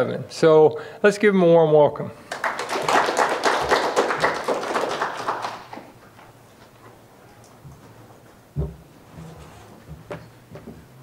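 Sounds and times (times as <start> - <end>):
audience applauding: 2.3 - 6.0.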